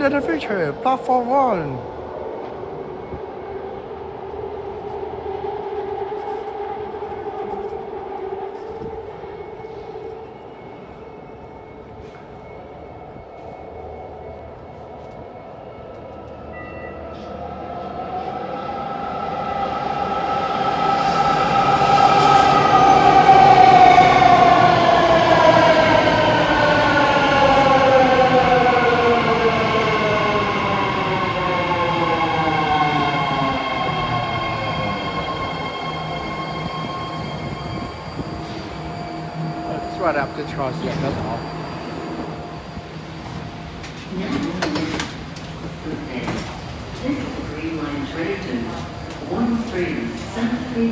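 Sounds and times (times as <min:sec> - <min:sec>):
train braking tones gliding down: 0:06.2 - 0:44.1.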